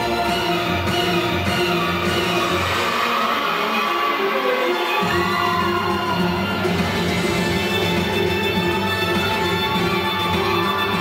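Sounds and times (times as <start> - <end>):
rhythmic music with bass: 0.0 - 2.8, 5.1 - 11.0.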